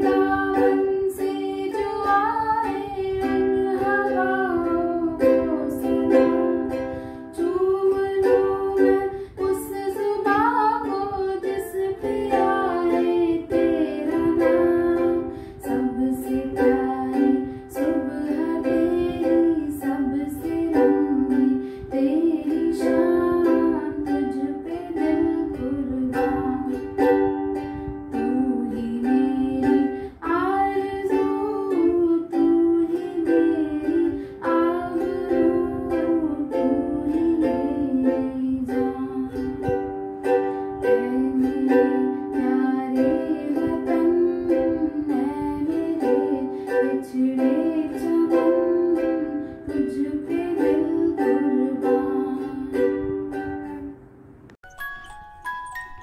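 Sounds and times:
woman singing: 0:00.0 - 0:54.0
strummed ukulele: 0:00.0 - 0:56.0.

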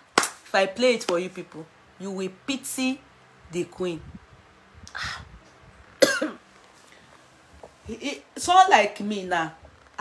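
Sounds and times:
woman coughing: 0:06.0 - 0:06.4.

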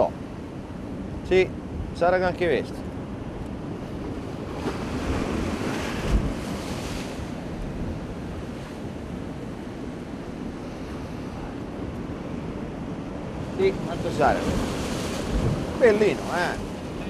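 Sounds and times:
wind buffeting microphone: 0:03.0 - 0:17.0
sea surf washing against rocks: 0:03.6 - 0:17.0.

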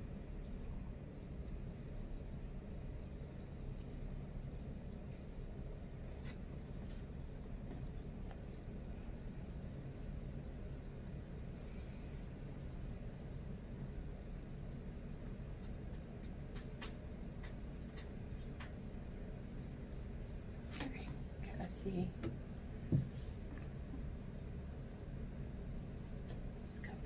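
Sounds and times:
low room hum: 0:00.0 - 0:27.0.

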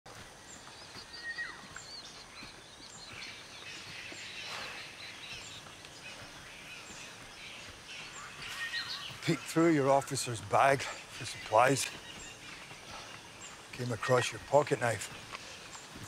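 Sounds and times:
birds chirping and calling: 0:00.1 - 0:16.0.

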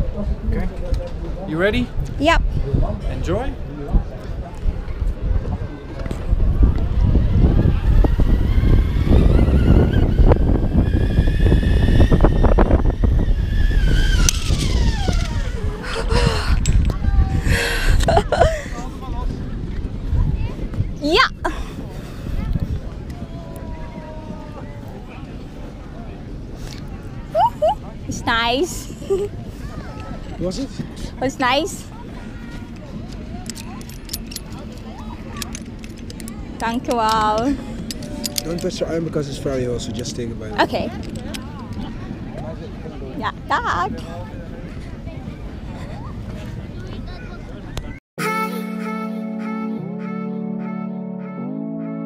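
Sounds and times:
wind rumble on microphone: 0:00.0 - 0:48.0
zip-line pulleys whining: 0:07.3 - 0:16.8
metal carabiners clinking: 0:33.4 - 0:38.8.

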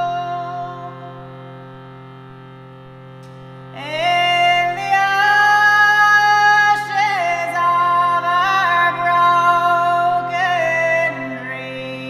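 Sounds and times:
sustained drone: 0:02.4 - 0:12.0
woman singing: 0:03.8 - 0:12.0.

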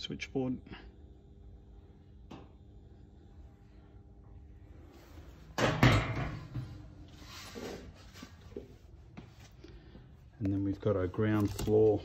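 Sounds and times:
metal cabinet door banging shut: 0:05.6 - 0:06.6.

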